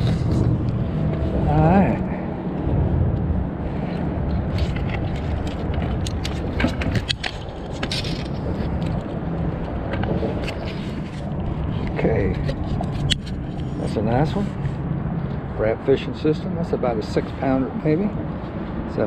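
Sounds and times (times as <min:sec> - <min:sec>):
low rumble: 0:00.0 - 0:17.4
sharp clicks and knocks: 0:04.3 - 0:13.7.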